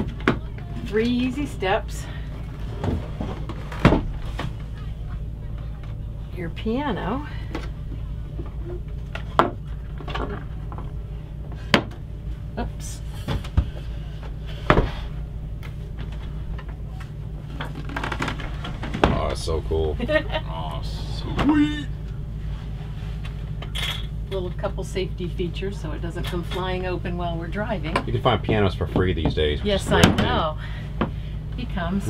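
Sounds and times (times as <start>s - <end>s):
steady low hum: 0.0s - 32.0s.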